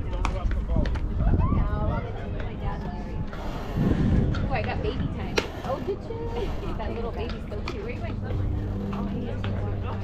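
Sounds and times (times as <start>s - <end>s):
indistinct chatter of voices: 0.0s - 10.0s
steady low hum: 2.4s - 10.0s.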